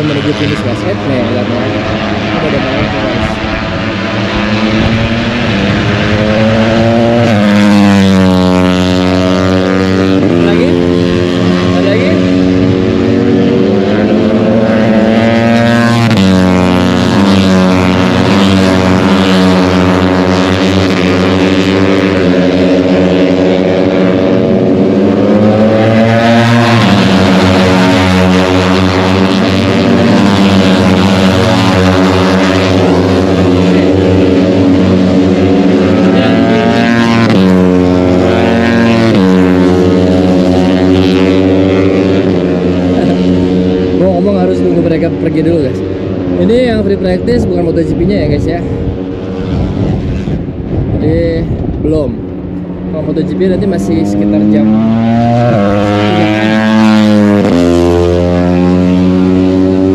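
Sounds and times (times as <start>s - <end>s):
racing motorcycle engines revving: 0.0s - 59.9s.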